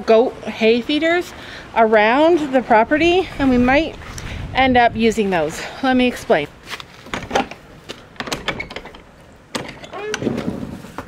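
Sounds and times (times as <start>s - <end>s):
metal latch clicking: 8.2s - 10.3s
door creaking: 8.2s - 10.7s.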